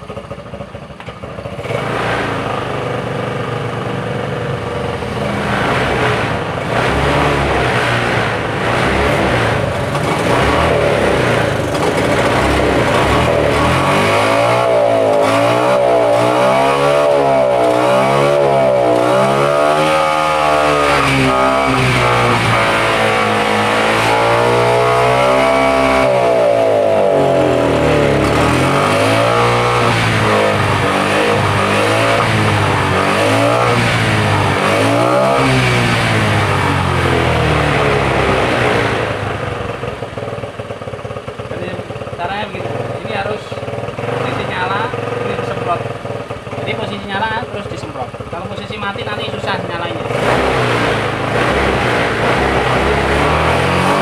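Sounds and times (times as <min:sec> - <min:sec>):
scooter engine revving: 0:00.0 - 0:54.0.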